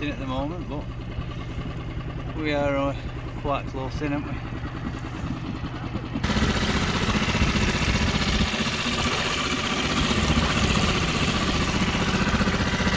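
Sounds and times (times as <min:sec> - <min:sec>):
outboard motor running: 0:00.0 - 0:12.9
wind and water rushing: 0:06.1 - 0:12.9.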